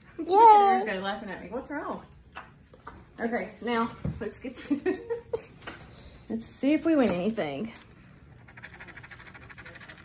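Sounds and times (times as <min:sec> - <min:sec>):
scratching lottery ticket: 0:08.4 - 0:10.0.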